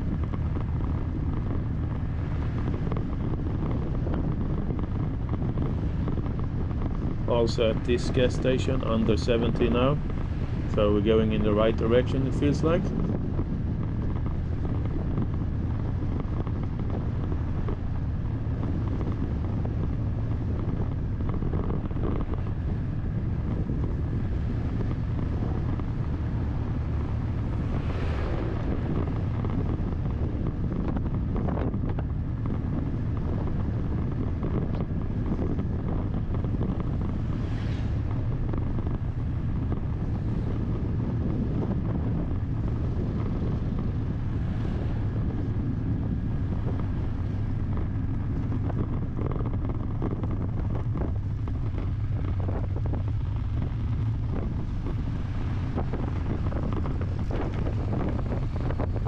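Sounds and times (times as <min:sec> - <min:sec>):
vehicle road rumble: 0:00.0 - 0:59.0
wind buffeting microphone: 0:00.0 - 0:59.0.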